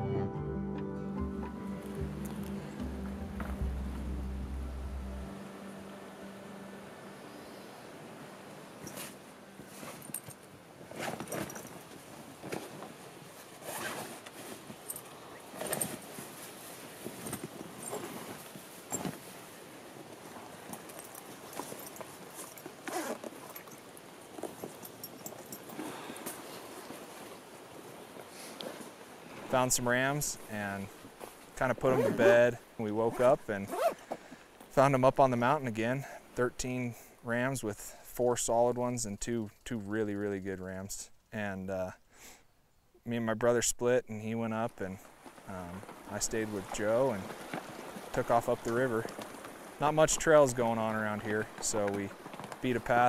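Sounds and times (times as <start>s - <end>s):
music: 0.0s - 7.4s
canvas bags rustling: 8.8s - 29.6s, 30.4s - 34.6s, 45.0s - 48.2s
buckles clicking: 9.8s - 12.7s, 20.7s - 26.4s.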